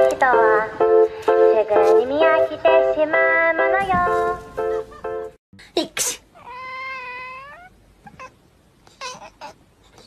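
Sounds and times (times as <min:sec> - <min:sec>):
cat meowing: 0:06.4 - 0:08.4.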